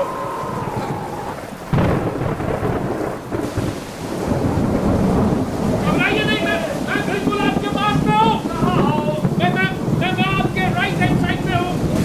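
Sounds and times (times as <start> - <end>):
loud thunderclap: 0.0 - 12.0
rain: 0.0 - 12.0
rumbling thunder: 0.0 - 12.0.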